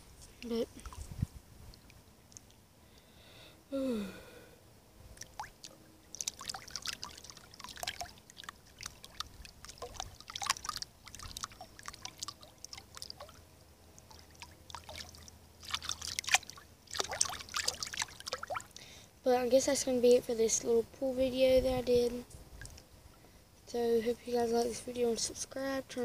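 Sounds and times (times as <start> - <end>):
water dripping: 5.1 - 18.9
feet splashing in pool water: 5.2 - 13.4, 14.0 - 18.8.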